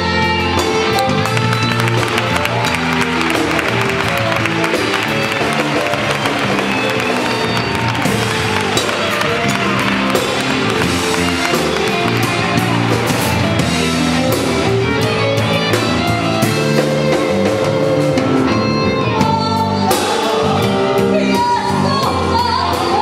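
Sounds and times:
drum kit: 0:00.0 - 0:23.0
guitar: 0:00.0 - 0:23.0.

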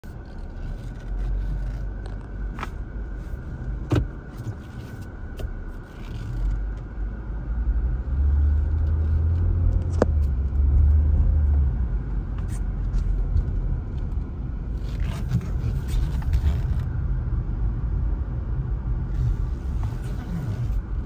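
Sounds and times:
car engine and road rumble: 0:00.0 - 0:21.0.

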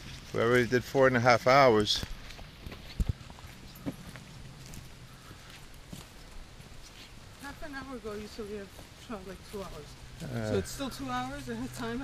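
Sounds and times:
footsteps on rocky dirt trail: 0:00.0 - 0:12.0.

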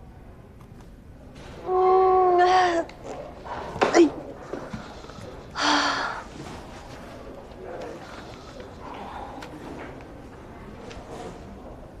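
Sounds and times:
woman gasping in pain: 0:01.7 - 0:02.9, 0:05.6 - 0:06.2.

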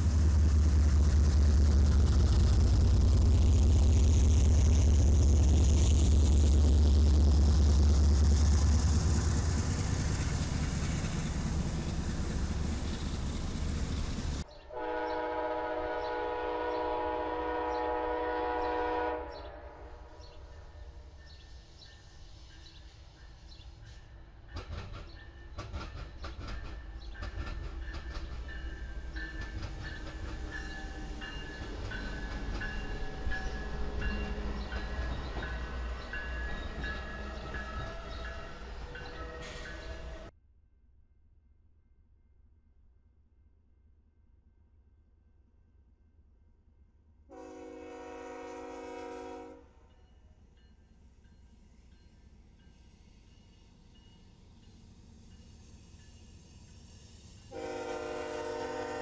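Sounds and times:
locomotive engine rumble: 0:00.0 - 0:14.5
train air horn: 0:14.7 - 0:20.3, 0:39.0 - 0:40.3, 0:47.3 - 0:49.8, 0:57.5 - 0:59.0
wheels clicking over rail joints: 0:24.5 - 0:40.2.

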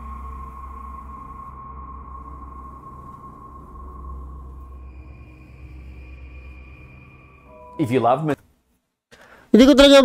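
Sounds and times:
steady high-pitched tone: 0:00.0 - 0:08.4
low hum: 0:00.0 - 0:08.8.

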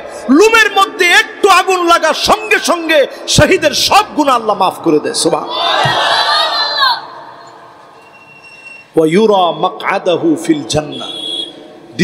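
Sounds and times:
amplified preacher shouting: 0:00.1 - 0:05.5.

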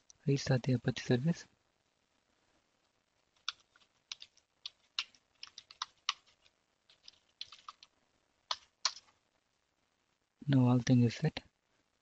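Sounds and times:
computer keyboard typing: 0:03.4 - 0:07.9, 0:08.5 - 0:09.1.

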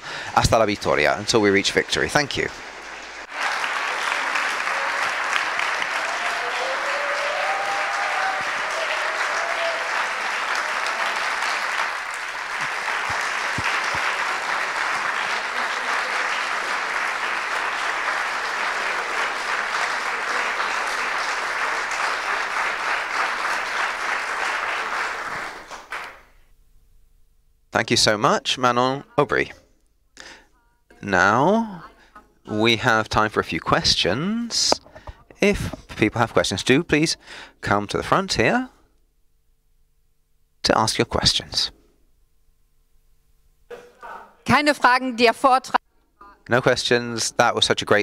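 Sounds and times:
audience clapping: 0:00.5 - 0:26.4.

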